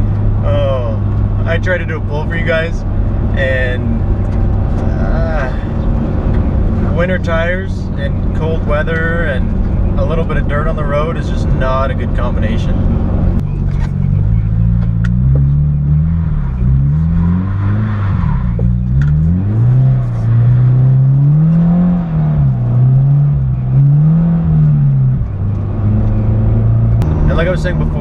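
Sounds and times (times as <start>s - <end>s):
car engine revving: 0.0s - 28.0s.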